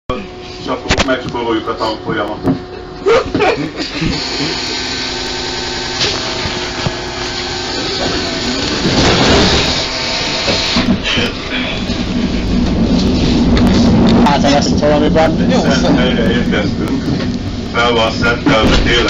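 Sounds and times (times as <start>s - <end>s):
electric drive whine: 0.1s - 19.0s
tram rolling and rumbling: 0.1s - 19.0s.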